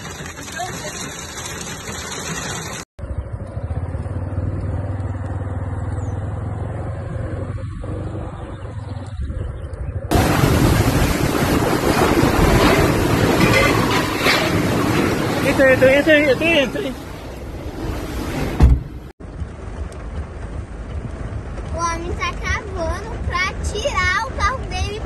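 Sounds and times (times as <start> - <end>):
rush of storm noise: 10.0 - 23.8.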